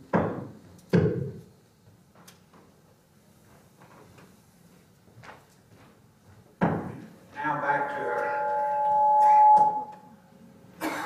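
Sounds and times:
microphone feedback howl: 7.4 - 10.3.

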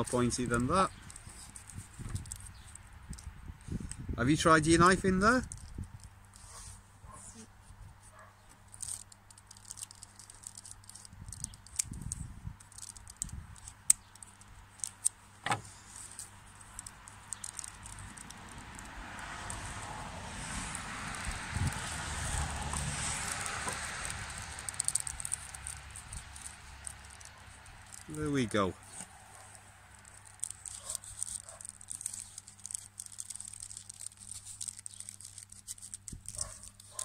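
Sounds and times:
rustling scrape of bark: 0.0 - 37.0
scissors snipping: 16.2 - 37.0.

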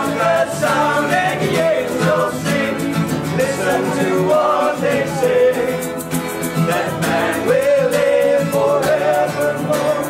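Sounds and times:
acoustic guitars strumming: 0.0 - 10.0
men singing together: 0.0 - 10.0.

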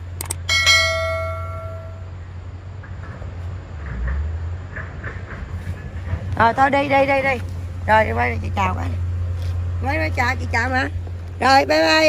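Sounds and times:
low hum: 0.0 - 2.8
clicks: 0.1 - 0.5
bell-like metallic chime: 0.5 - 2.1.

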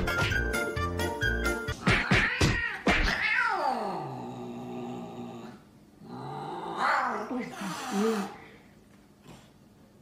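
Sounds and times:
cat yowling: 2.0 - 3.9.

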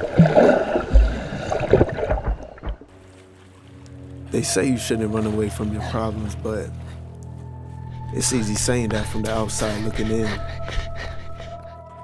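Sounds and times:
water churning and splashing: 0.0 - 6.4
soft sustained music: 2.8 - 12.0.

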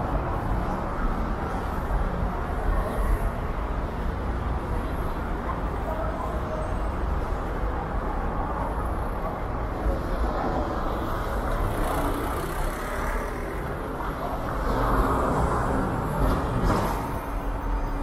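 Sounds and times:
city bus passing: 0.0 - 18.0
cars driving past: 9.4 - 18.0.

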